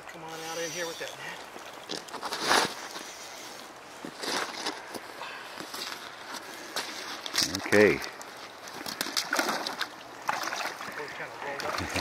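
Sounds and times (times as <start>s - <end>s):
water sloshing from wading: 0.0s - 12.0s.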